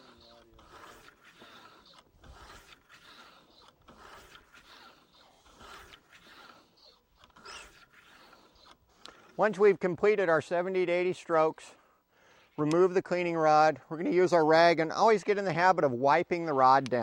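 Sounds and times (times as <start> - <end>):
bore brush scraping in barrel: 0.0 - 11.4.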